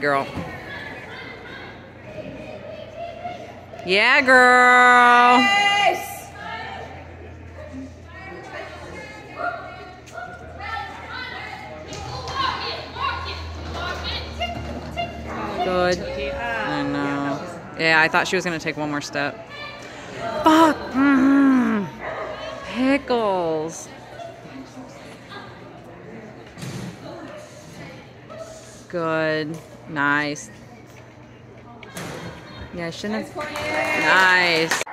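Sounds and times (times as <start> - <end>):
steady low hum: 0.0 - 31.7
people talking and calling out: 0.0 - 34.9.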